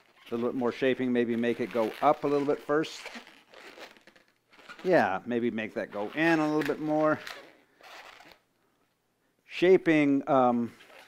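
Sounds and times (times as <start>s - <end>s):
balloon rubbing and crinkling: 0.0s - 8.5s, 10.7s - 11.0s.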